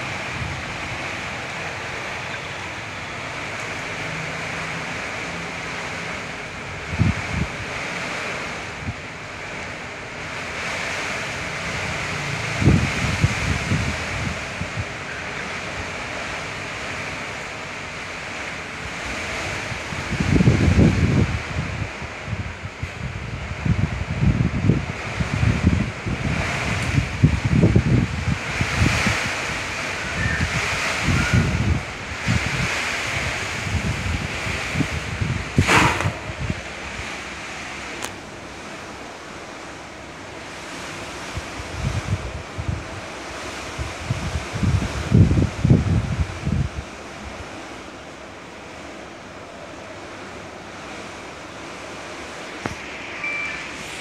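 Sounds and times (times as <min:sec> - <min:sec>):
steady hiss: 0:47.2 - 0:54.0.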